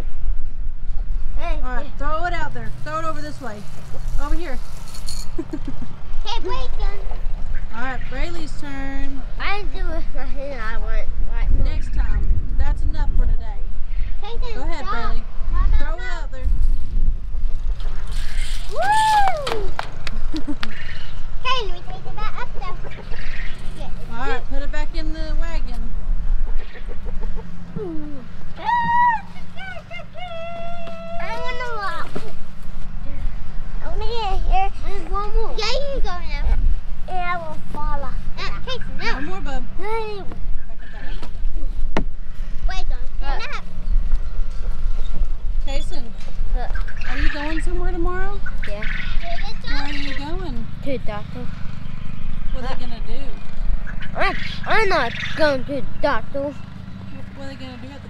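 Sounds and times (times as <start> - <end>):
wind rumble on microphone: 0.0 - 5.0, 5.7 - 31.2
children talking and calling out: 5.3 - 16.6, 18.1 - 41.4, 42.4 - 58.0.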